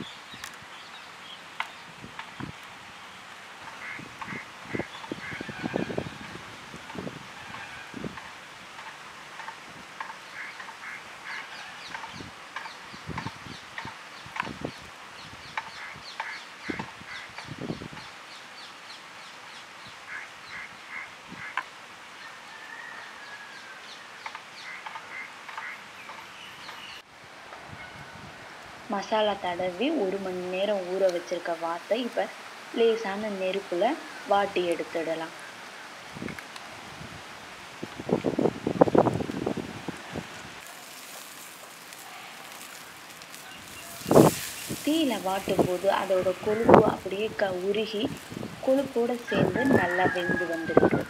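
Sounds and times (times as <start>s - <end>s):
small birds chirping: 0.0s - 6.3s, 8.5s - 21.7s, 23.9s - 27.0s, 42.4s - 49.3s.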